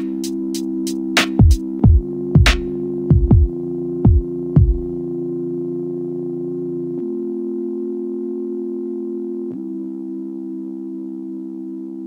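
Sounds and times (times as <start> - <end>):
sustained synthesizer chord: 0.0 - 12.0.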